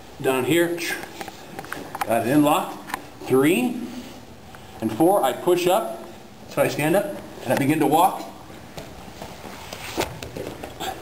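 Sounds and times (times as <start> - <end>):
bare feet shuffling on a mat: 7.0 - 11.0.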